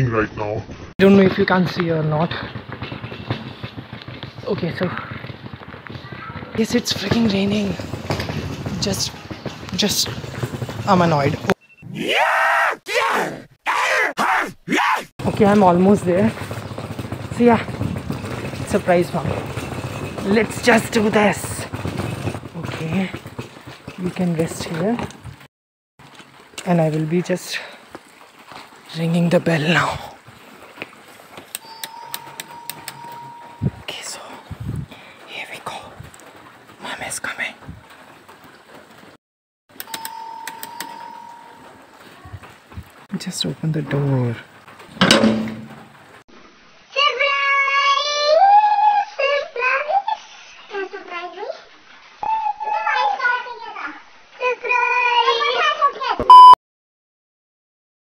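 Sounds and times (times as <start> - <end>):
electronic doorbell tone: 31.6 - 33.8, 39.8 - 41.8
scattered clicks: 39.7 - 41.0.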